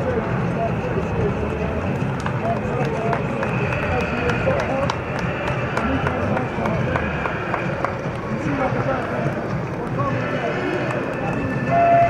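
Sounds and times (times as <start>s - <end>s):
men's voices chattering: 0.0s - 12.0s.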